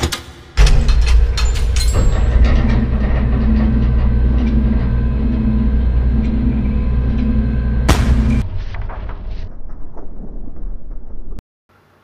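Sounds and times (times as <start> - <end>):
heavy vault door grinding open: 0.0 - 11.4.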